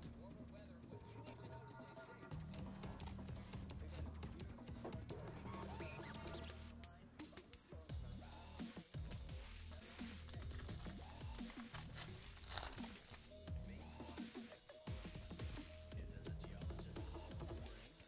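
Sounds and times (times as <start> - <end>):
background music with bass line: 0.0 - 18.0
foil wrapper crinkling and tearing: 9.0 - 13.3.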